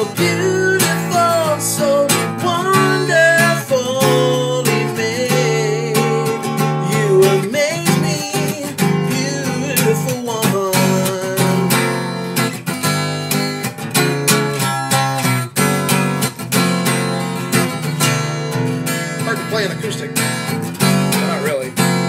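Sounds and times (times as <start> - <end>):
man singing: 0.0 - 12.5
acoustic guitar strumming: 0.0 - 22.0.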